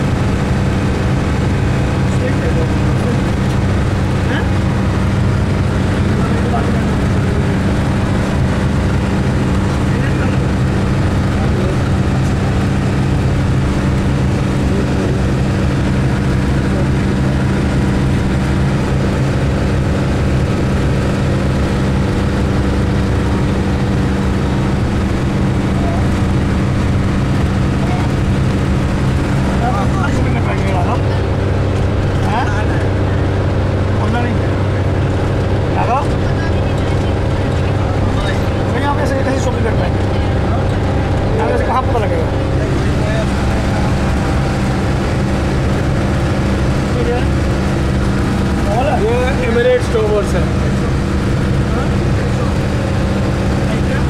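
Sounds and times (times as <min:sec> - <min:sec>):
faint passenger voices: 0:00.0 - 0:54.0
minibus engine drone: 0:00.0 - 0:54.0
road noise: 0:00.0 - 0:54.0.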